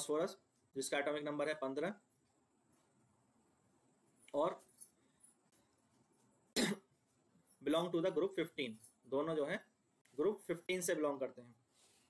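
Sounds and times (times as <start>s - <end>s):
man coughing: 6.6s - 6.9s.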